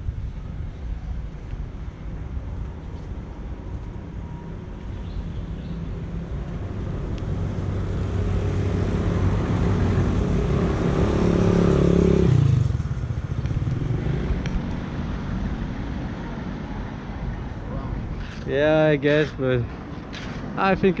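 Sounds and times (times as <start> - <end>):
street hum: 0.0 - 21.0
vehicle driving past: 5.7 - 16.2.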